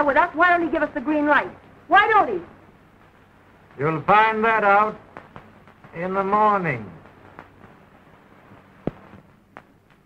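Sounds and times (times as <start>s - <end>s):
faint hiss: 0.0s - 10.0s
film soundtrack clicks and pops: 2.9s - 10.0s.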